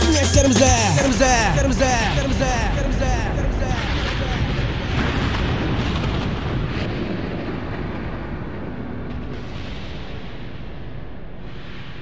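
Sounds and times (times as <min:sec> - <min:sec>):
loud dense rumbling noise: 0:00.0 - 0:12.0.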